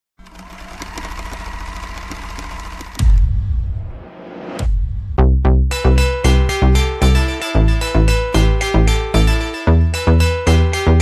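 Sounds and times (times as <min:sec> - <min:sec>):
fast mechanical rattling and clicking: 0:00.2 - 0:03.2.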